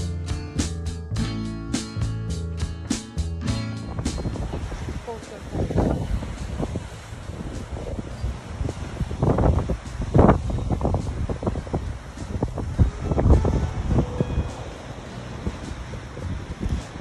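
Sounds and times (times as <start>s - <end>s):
surf breaking on rocks: 3.4s - 17.0s
wind buffeting microphone: 3.5s - 17.0s.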